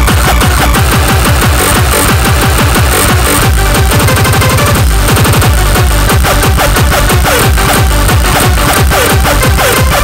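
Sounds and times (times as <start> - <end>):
fast electronic dance music: 0.0 - 10.0
pitch-dropping kick drums: 0.0 - 10.0.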